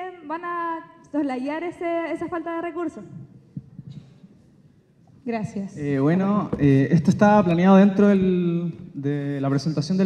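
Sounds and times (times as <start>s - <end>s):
microphone handling thumps: 3.1s - 4.3s, 6.4s - 7.2s.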